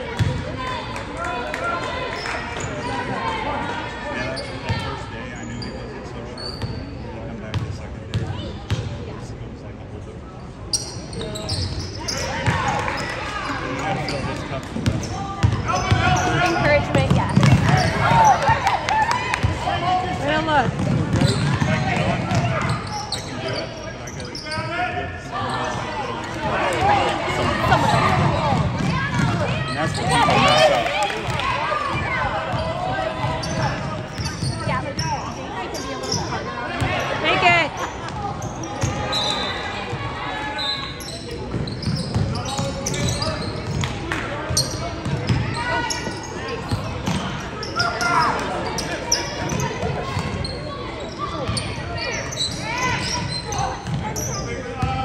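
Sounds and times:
spectators talking and shouting: 0.0 - 9.3, 10.5 - 55.0
basketball bouncing on wooden floor: 16.9 - 17.8.

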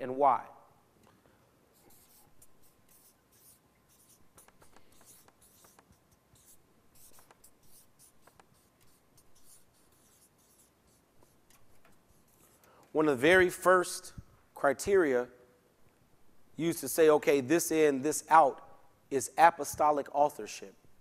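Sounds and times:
pen scratching on paper: 1.7 - 12.5.

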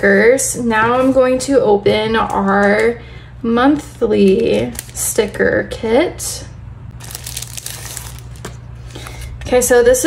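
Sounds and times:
plastic sleeve crinkling: 3.8 - 5.3, 7.0 - 9.3.

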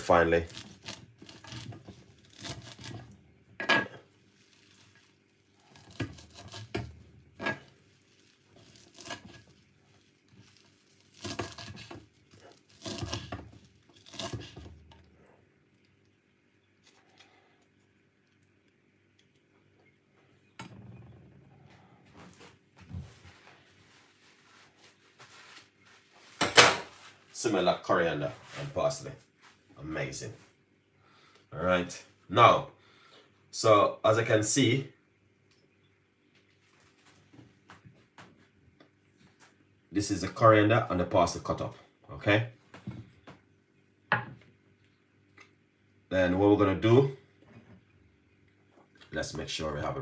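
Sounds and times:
knife chopping on wooden board: 12.8 - 13.5.

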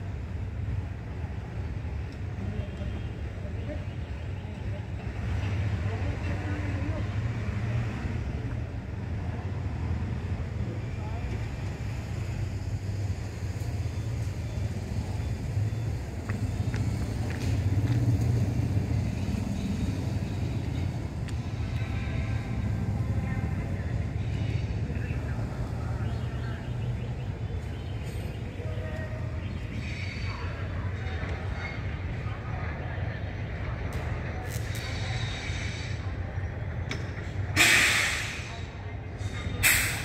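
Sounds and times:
train coach rumbling: 0.0 - 40.0.

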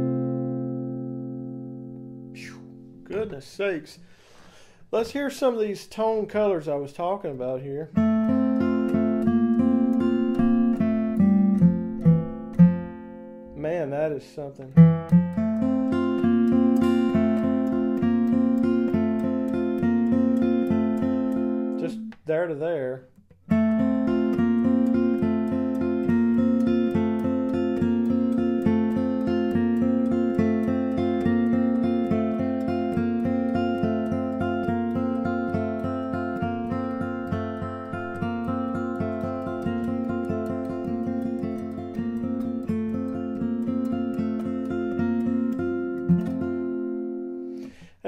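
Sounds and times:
acoustic guitar picked and strummed: 0.0 - 48.0.

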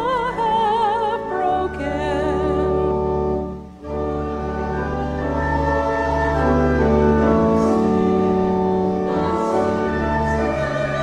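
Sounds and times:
organ chords: 0.0 - 11.0
congregation singing a hymn: 3.9 - 11.0.

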